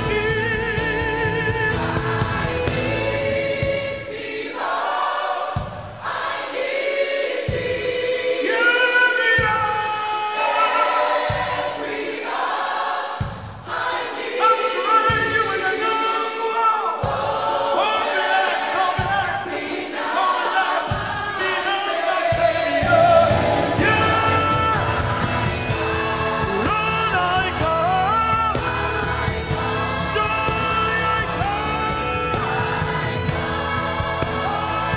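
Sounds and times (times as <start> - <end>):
choir singing in harmony: 0.0 - 34.9
deep bass beat: 22.8 - 27.8.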